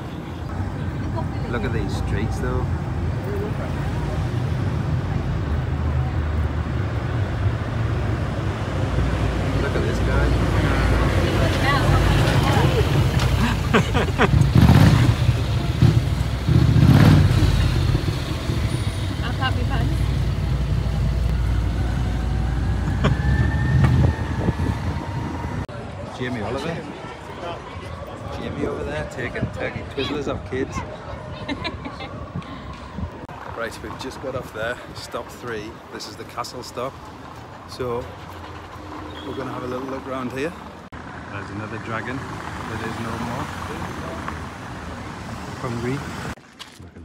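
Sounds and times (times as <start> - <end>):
road rumble: 0.0 - 47.0
motorcycle passing: 6.9 - 25.7
wind buffeting microphone: 21.7 - 26.0, 27.9 - 35.1.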